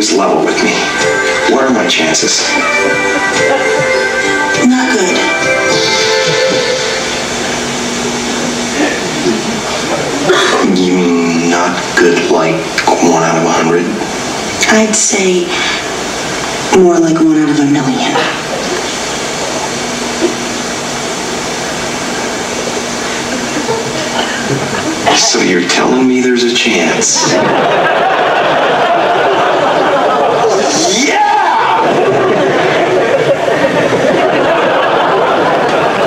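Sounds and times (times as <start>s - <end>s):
soft film music over loudspeakers: 0.0s - 36.0s
steady hiss: 0.0s - 36.0s.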